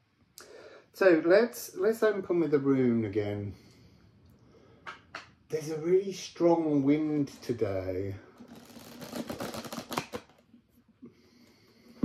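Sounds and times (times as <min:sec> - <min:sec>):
cards being shuffled: 0:08.4 - 0:10.5.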